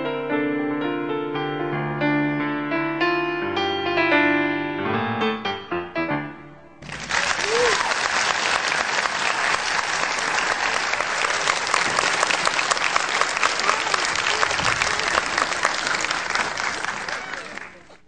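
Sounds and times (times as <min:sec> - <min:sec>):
audience applauding: 0:06.8 - 0:18.0.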